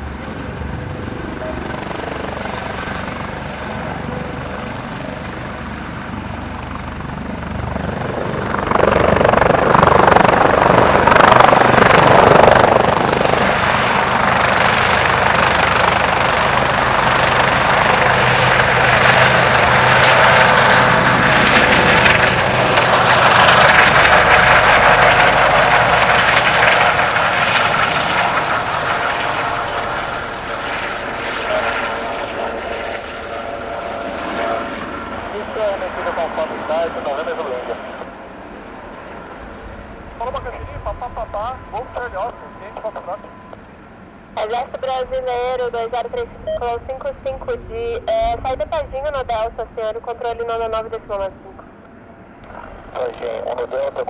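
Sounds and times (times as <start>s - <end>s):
helicopter hovering: 0.0s - 54.0s.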